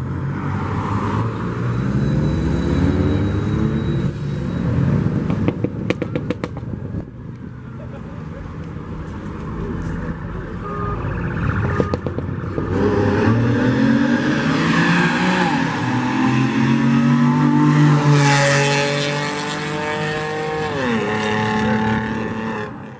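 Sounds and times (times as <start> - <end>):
car engines accelerating hard: 11.1 - 22.9.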